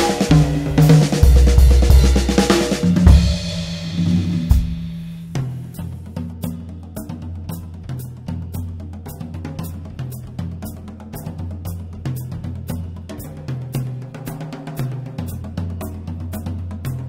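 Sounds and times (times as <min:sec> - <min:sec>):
drum kit playing: 0:00.0 - 0:11.4.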